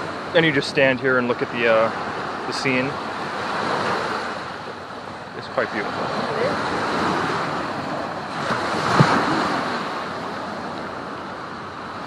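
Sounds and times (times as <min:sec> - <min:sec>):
small waves washing on sand: 0:00.0 - 0:12.0
wind on microphone: 0:03.2 - 0:11.7.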